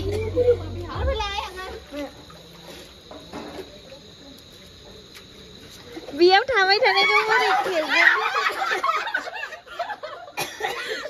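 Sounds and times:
crickets trilling: 0:00.0 - 0:11.0.

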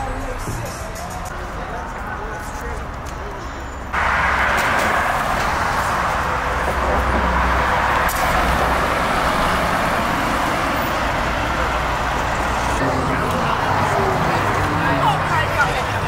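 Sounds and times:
road traffic: 0:00.0 - 0:16.0
bus driving past: 0:03.5 - 0:16.0.

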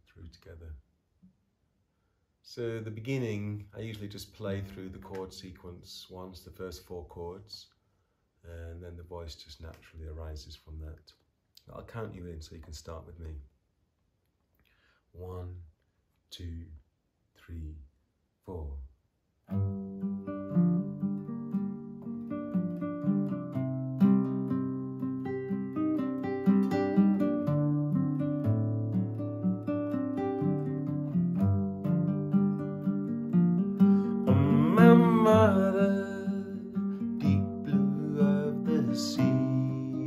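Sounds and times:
fingerpicked nylon-string guitar: 0:19.5 - 0:40.0
man singing: 0:34.2 - 0:40.0.

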